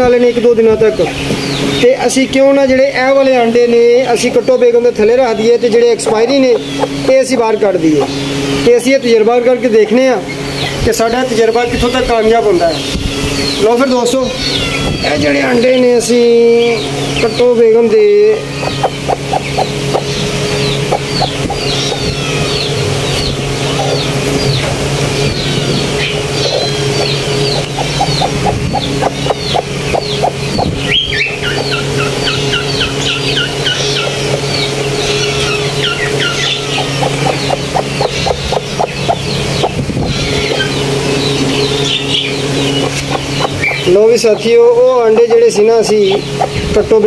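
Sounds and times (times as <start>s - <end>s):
hen clucking rapidly: 0.0s - 47.0s
low hum: 0.0s - 47.0s
small birds chirping: 0.0s - 47.0s.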